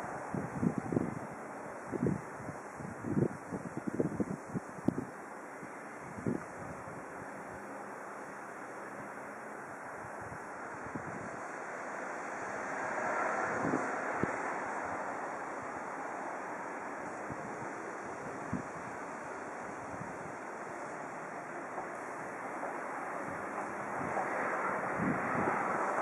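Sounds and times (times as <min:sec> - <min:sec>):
wind blowing across microphone: 0:00.0 - 0:26.0.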